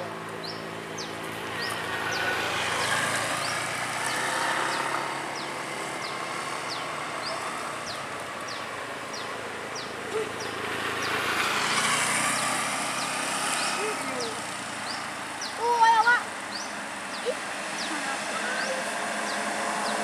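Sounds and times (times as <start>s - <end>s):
passing traffic: 0.0s - 20.0s.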